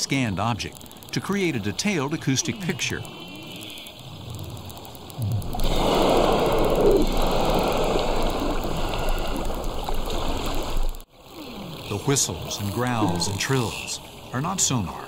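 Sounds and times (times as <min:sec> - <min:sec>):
water splashing and rushing: 0:03.9 - 0:15.0.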